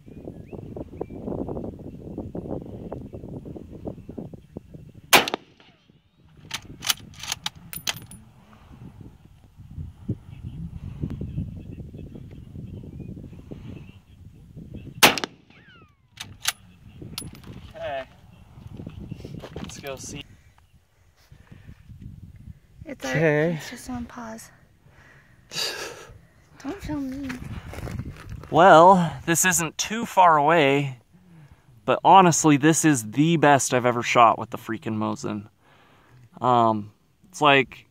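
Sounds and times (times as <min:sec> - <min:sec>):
rifle shots: 0:05.1 - 0:05.8, 0:15.0 - 0:15.8.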